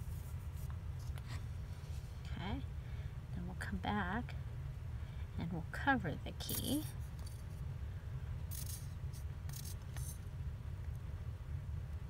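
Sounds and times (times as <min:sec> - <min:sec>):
steady low hum: 0:00.0 - 0:12.0
craft pieces rustling and clicking: 0:08.5 - 0:08.9, 0:09.5 - 0:10.2.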